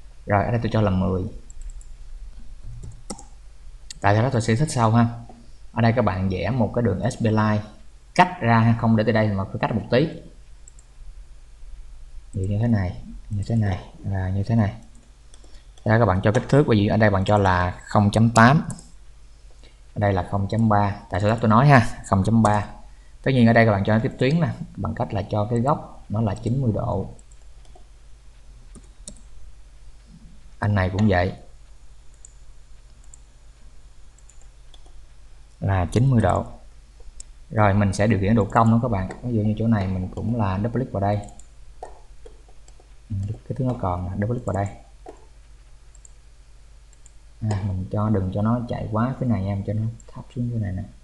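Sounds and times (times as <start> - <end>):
low steady hum: 0.0 - 51.0
computer mouse clicks: 1.4 - 4.0, 10.6 - 10.9, 14.8 - 16.6, 18.3 - 19.8, 27.2 - 27.9, 28.7 - 29.4, 32.1 - 33.3, 34.1 - 35.6, 37.0 - 37.4, 38.4 - 39.3, 41.2 - 43.8, 44.4 - 45.3, 45.9 - 46.2, 46.9 - 47.7.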